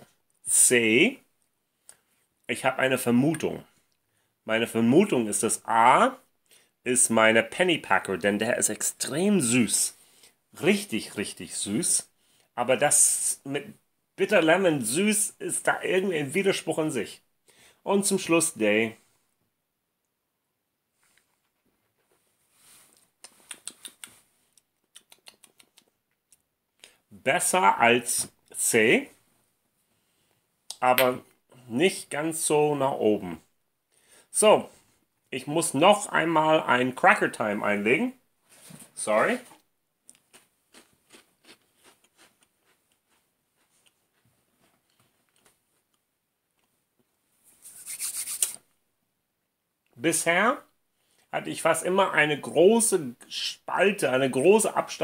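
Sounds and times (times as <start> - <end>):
lip smacks and tongue clicks: 23.2 - 27.0
soft breath: 33.9 - 35.0
person chewing cracker: 40.0 - 46.7.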